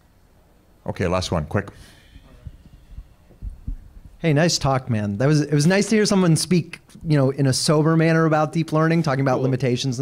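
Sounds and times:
soft low thumps: 0:02.4 - 0:04.2.

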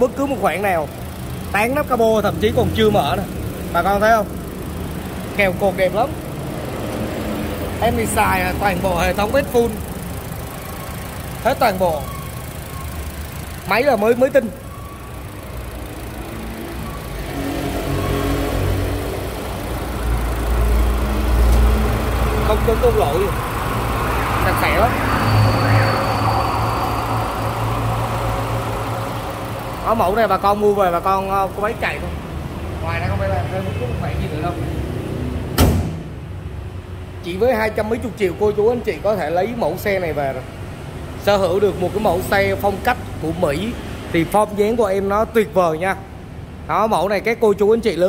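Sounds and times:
deep engine rumble: 0:00.0 - 0:37.3
car engine humming: 0:00.0 - 0:46.7
car panel shutting thump: 0:35.6 - 0:36.1.

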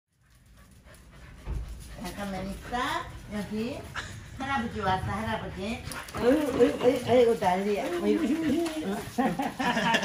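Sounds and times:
dog panting: 0:00.1 - 0:10.0
low thump: 0:01.4 - 0:01.8.

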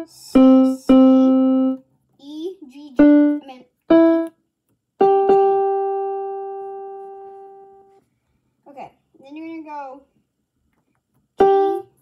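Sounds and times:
electronic keyboard note: 0:00.0 - 0:01.8.

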